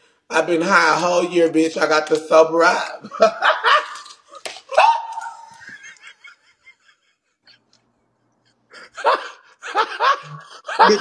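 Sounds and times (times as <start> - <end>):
man laughing: 3.0 - 4.9, 8.7 - 11.0.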